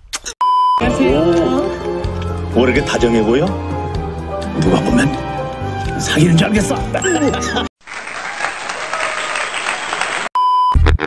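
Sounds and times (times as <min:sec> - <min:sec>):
music: 0:00.8 - 0:07.7
short electronic beep: 0:07.0 - 0:07.7
applause: 0:07.8 - 0:10.3.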